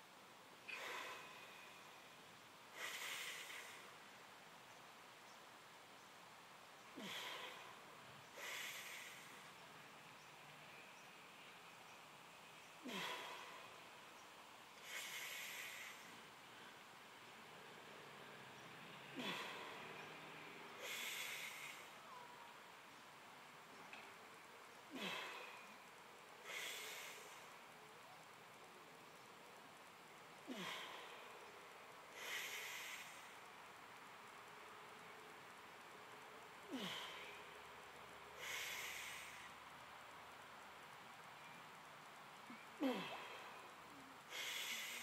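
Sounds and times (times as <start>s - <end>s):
man breathing hard: 44.2s - 45.0s.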